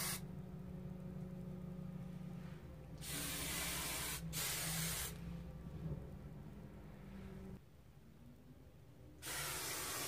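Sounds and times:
aerosol spray can hissing: 0:00.0 - 0:00.2, 0:03.0 - 0:05.2, 0:09.2 - 0:10.0.

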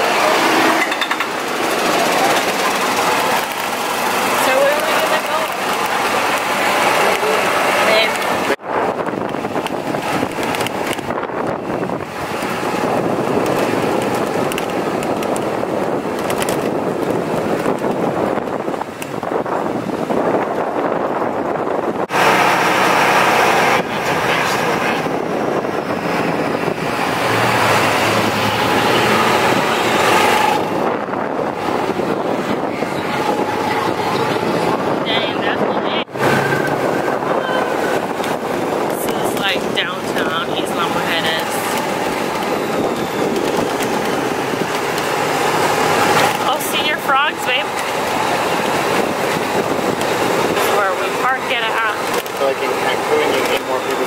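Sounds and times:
indistinct voices: 0:00.0 - 0:08.6, 0:22.1 - 0:54.0
golf cart road noise: 0:00.0 - 0:54.0
wind on microphone: 0:00.0 - 0:54.0.

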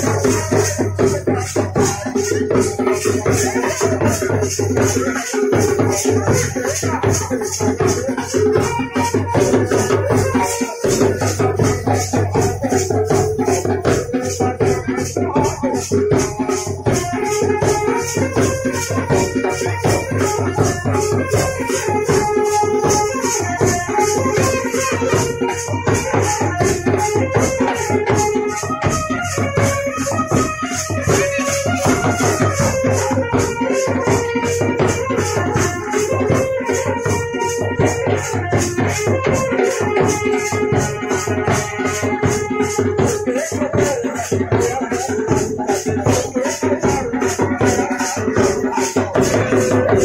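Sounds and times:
drum beat: 0:00.0 - 0:50.0
jingling percussion: 0:00.0 - 0:50.0
wedding band music: 0:00.0 - 0:50.0.

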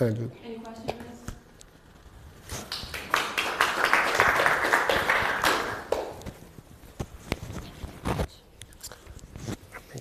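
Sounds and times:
audience applause: 0:02.6 - 0:06.2.

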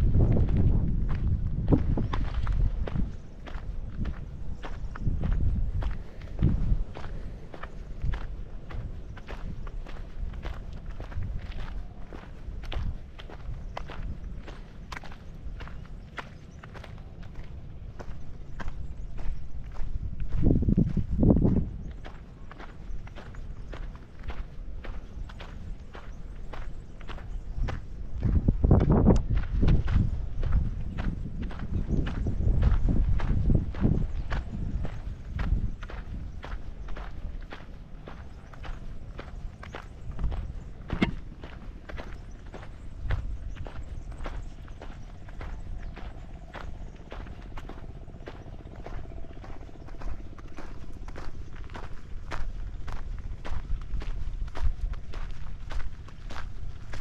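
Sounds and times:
footsteps crunching on gravel: 0:00.0 - 0:57.0
low rumbling: 0:00.0 - 0:57.0.

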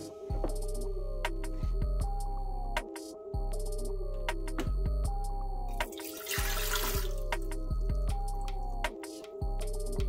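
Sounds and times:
background music with bass: 0:00.0 - 0:10.0
water pouring into pan: 0:05.9 - 0:07.2.

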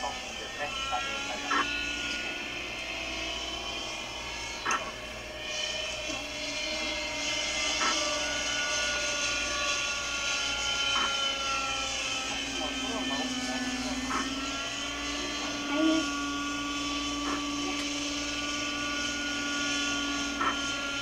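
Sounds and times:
model helicopter engine and rotors: 0:00.0 - 0:21.0.

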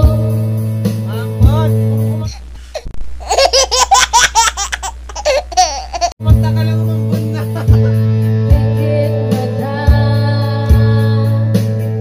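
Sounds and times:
person singing: 0:00.0 - 0:00.6, 0:07.0 - 0:12.0
guitar: 0:00.0 - 0:02.4, 0:06.2 - 0:12.0
high-pitched laughter: 0:03.2 - 0:06.2.

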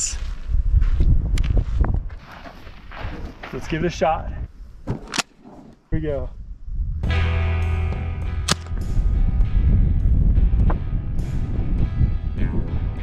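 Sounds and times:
rifle shot: 0:08.4 - 0:08.8.

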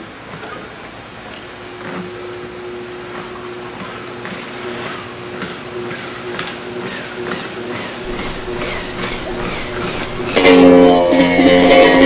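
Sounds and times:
electric guitar held tone: 0:08.0 - 0:12.0.

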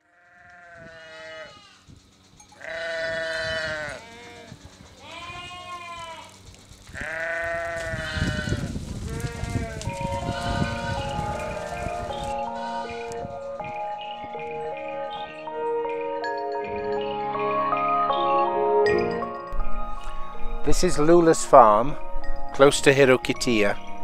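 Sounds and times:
sheep bleating: 0:00.0 - 0:01.8, 0:02.6 - 0:13.2
chime-like music notes: 0:10.0 - 0:24.0.

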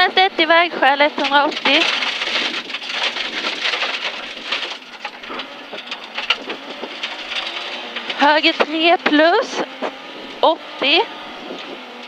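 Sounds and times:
gravel rattling against underbody: 0:00.0 - 0:12.0.

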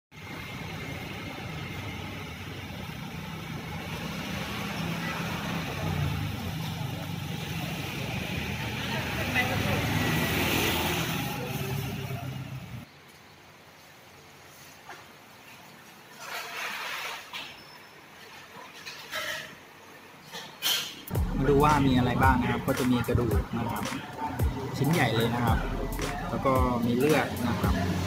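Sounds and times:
road traffic: 0:00.1 - 0:15.8, 0:19.3 - 0:28.0
indistinct voices: 0:21.1 - 0:28.0.

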